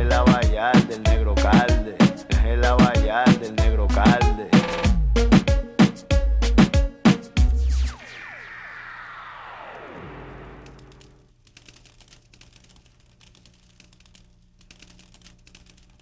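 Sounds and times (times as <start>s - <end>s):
tones falling in pitch: 7.4s - 11.2s
low hum: 7.4s - 11.3s
crackling clicks: 7.8s - 16.0s.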